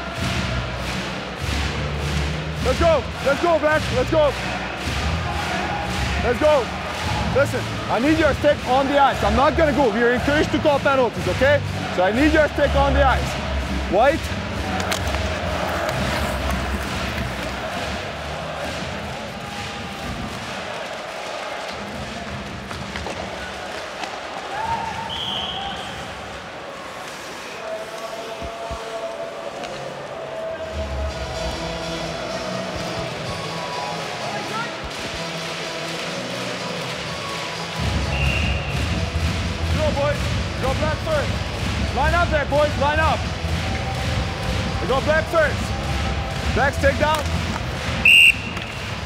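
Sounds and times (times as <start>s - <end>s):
crowd noise: 0.0s - 49.0s
hockey sticks and puck clacking: 12.0s - 28.9s, 29.5s - 30.1s, 31.4s - 49.0s
skates scraping on ice: 14.6s - 18.8s
referee's whistle: 25.0s - 26.0s, 38.0s - 38.8s, 48.0s - 49.0s.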